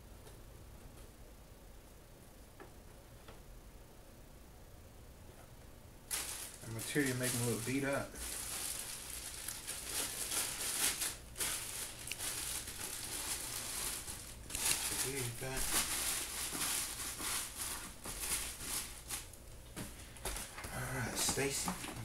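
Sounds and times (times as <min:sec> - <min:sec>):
plastic bag crinkling: 0:06.1 - 0:22.0.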